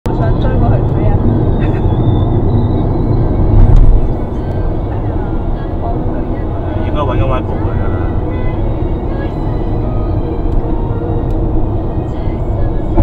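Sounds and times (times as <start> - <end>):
car engine and tyre rumble: 0.1 - 13.0.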